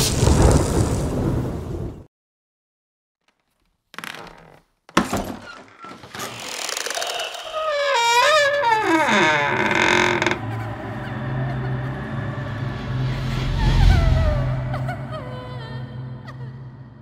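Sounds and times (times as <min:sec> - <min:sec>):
door creaking: 0:03.3 - 0:11.7.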